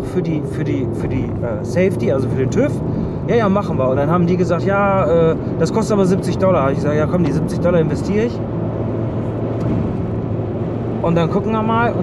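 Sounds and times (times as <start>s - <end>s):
car interior driving drone: 0.0s - 12.0s.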